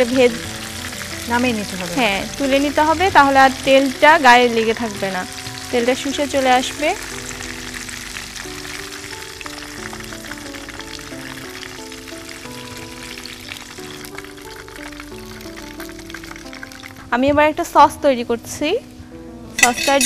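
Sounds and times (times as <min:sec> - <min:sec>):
oil sizzling in frying pan: 0:00.0 - 0:17.2, 0:19.6 - 0:20.0
background music melody: 0:00.0 - 0:20.0.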